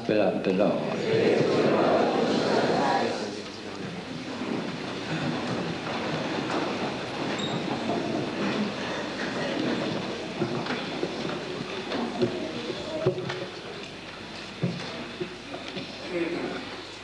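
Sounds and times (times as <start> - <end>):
people shuffling and rustling: 0.8 - 17.0
wooden pews knocking and creaking: 4.4 - 13.7.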